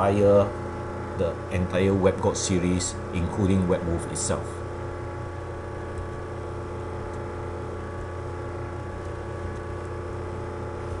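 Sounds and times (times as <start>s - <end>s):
steady electrical hum: 0.0s - 11.0s.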